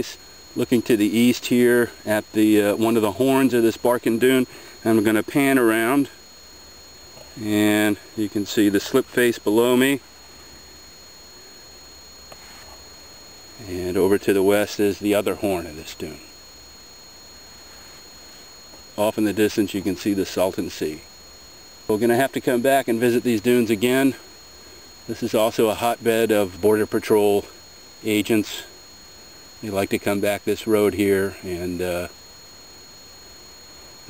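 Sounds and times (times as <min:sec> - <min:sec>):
faint hiss: 0:00.0 - 0:34.0
high-pitched whine: 0:00.0 - 0:34.0.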